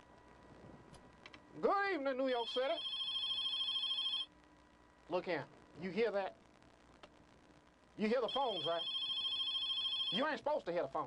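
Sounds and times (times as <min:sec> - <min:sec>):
telephone ringing: 0:02.4 - 0:04.3, 0:08.2 - 0:10.5.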